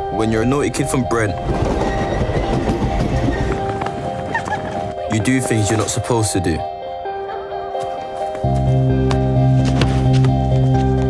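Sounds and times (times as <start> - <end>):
background music held notes: 0.0 - 11.0
train passing rumble: 0.4 - 6.7.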